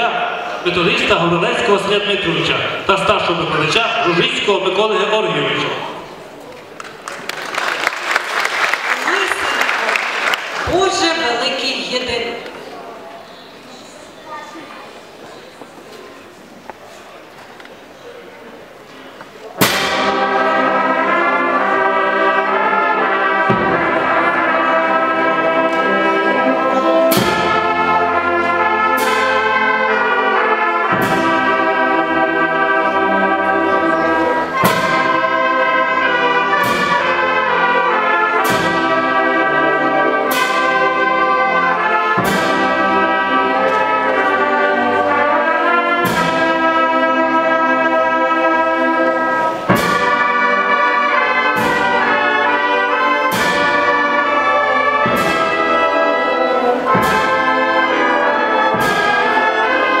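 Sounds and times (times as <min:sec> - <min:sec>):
brass band playing: 0:00.0 - 0:06.4, 0:19.5 - 1:00.0
percussion strikes: 0:19.6 - 1:00.0.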